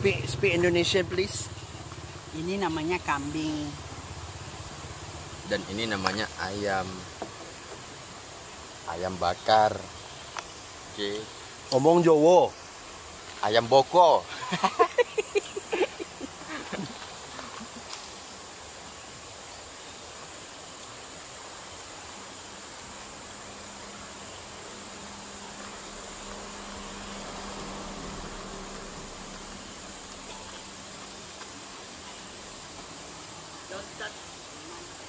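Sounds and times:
forest ambience: 0.0 - 35.0
high insect drone: 0.0 - 35.0
faint low hum: 21.6 - 35.0.

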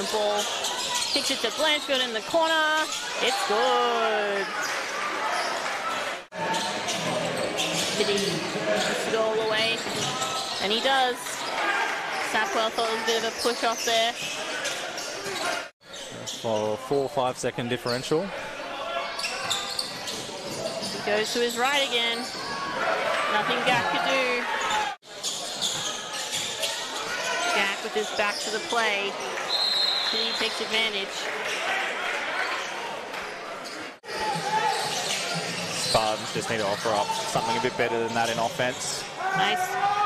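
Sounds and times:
basketball court noise: 0.0 - 17.0, 17.8 - 40.0.

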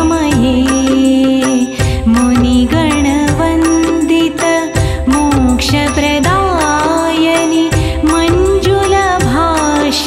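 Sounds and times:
steady percussion beat: 0.0 - 10.0
woman singing devotional song: 0.0 - 10.0.

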